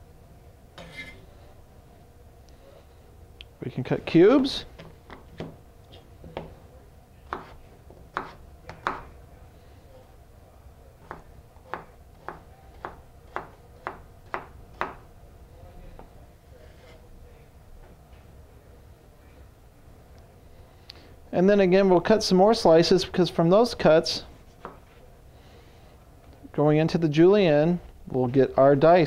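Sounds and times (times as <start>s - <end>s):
knife slicing potato on board: 7.3s - 9.1s, 11.0s - 15.0s.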